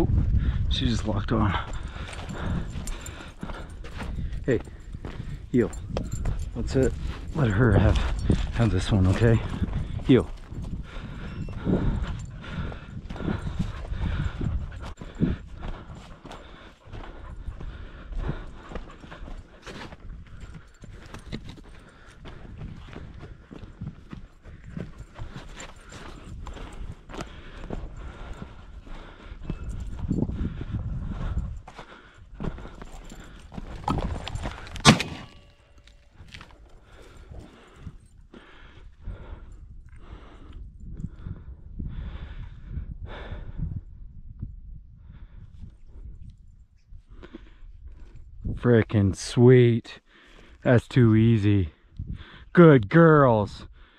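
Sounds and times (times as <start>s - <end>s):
footsteps crunching through brush: 33.6s - 37.0s
shotgun shot: 34.8s - 35.4s.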